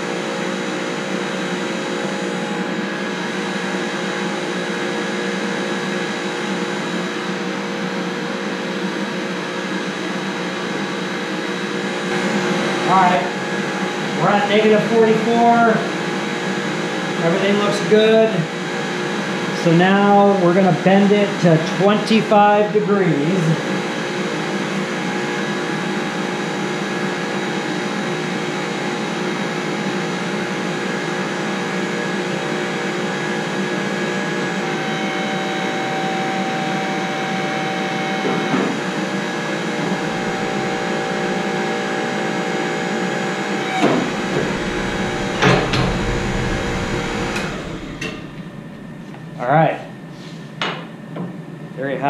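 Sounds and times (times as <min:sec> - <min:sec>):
hydraulic pump motor running: 0:34.4 - 0:50.4.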